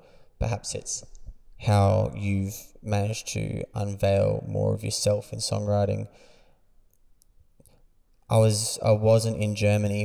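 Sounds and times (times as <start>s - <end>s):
faint breath: 0.0s - 0.4s, 6.1s - 6.8s.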